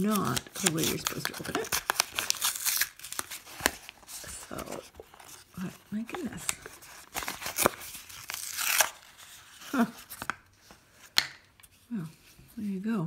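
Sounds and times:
packaging tearing and crinkling: 0:00.0 - 0:10.4.

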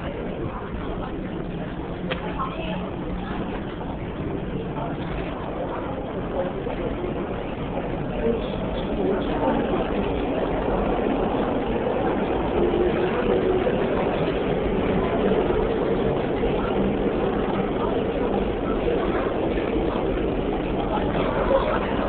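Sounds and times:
electric train rumbling past: 0:02.7 - 0:22.0.

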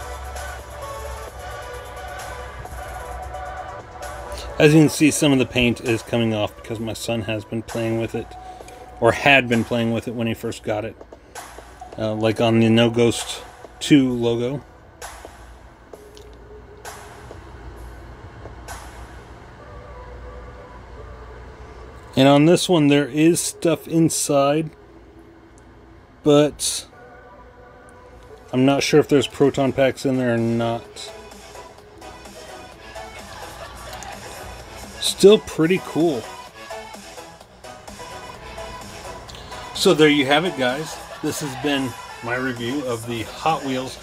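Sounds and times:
background music with low bass: 0:00.0 - 0:44.0
low background hum: 0:00.0 - 0:44.0.

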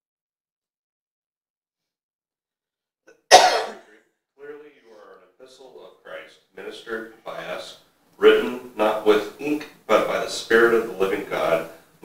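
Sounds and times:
loud cough: 0:03.3 - 0:03.9.

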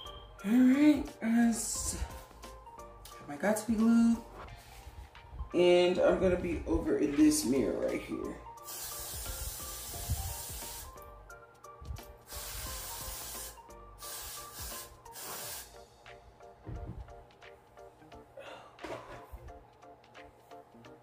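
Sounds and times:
background music: 0:00.0 - 0:21.0
aerosol hairspray hissing: 0:08.6 - 0:11.0, 0:12.2 - 0:15.8.

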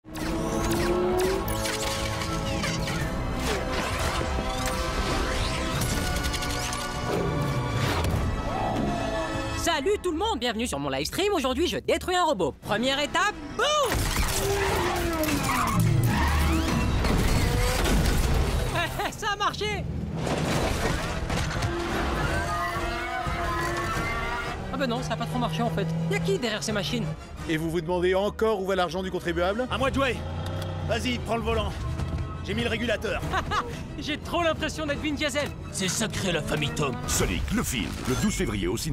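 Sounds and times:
rumble of vehicle and action effects: 0:00.0 - 0:09.6, 0:12.5 - 0:38.9
dramatic orchestral film music: 0:00.1 - 0:38.9.

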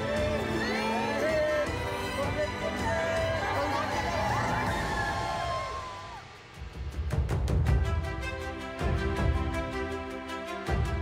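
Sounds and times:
bass-heavy drum beats: 0:06.5 - 0:09.9.

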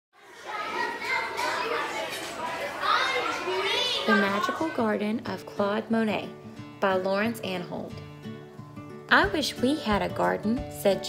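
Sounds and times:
children chattering and calling out: 0:00.2 - 0:05.5.

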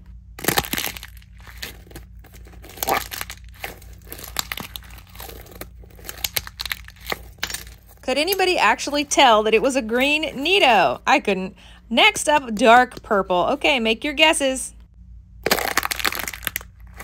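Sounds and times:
plaster shell cracking and crunching: 0:00.4 - 0:08.6, 0:15.4 - 0:17.0.

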